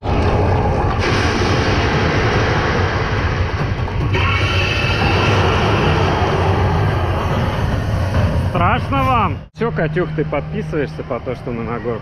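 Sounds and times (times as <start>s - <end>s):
dense music with strong bass: 0.0s - 12.0s.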